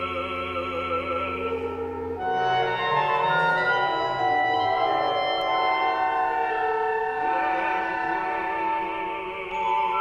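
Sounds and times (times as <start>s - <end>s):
wind ensemble holding a chord: 0.0s - 9.8s.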